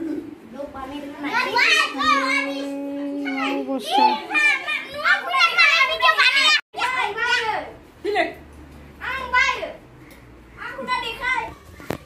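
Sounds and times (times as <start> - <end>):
children talking and calling out: 0.0 - 7.9, 9.0 - 12.0
child's drawn-out voice: 1.0 - 7.6.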